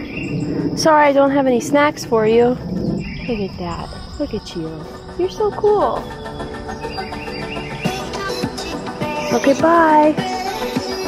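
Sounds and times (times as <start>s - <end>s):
background music with held tones: 2.0s - 11.0s.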